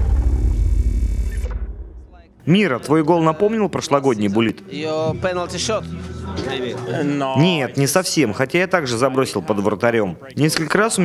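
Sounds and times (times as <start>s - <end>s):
deep cinematic boom rumble: 0.0s - 2.4s.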